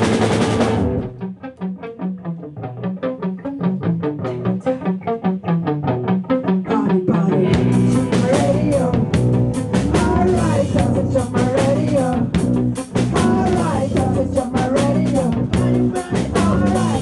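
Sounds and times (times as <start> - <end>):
electric guitar riff: 0.0 - 17.0
rock band playing loud: 0.0 - 17.0.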